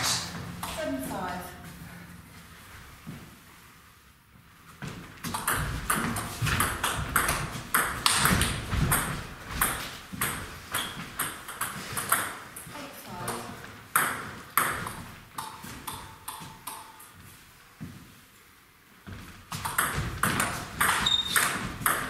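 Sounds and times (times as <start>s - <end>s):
table tennis ball pocks: 5.2s - 12.4s.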